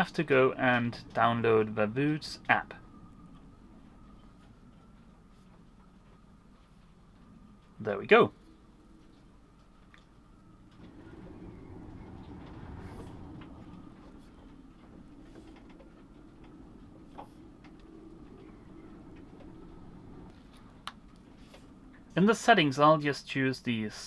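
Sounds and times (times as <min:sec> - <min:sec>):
faint low rumble: 0:00.0 - 0:24.0.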